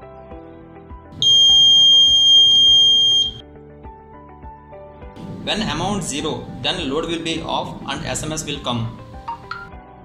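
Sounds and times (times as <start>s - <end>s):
background music: 0.0s - 10.0s
high-pitched buzzer beep: 1.2s - 3.4s.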